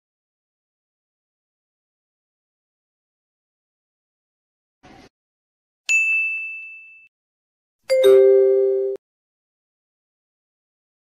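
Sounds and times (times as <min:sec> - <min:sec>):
bright single-note ding: 0:07.9 - 0:09.0
lower two-tone chime: 0:07.9 - 0:09.0.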